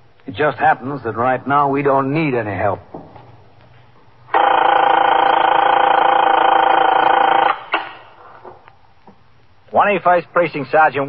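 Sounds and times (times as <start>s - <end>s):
telephone ringing: 4.3s - 7.7s.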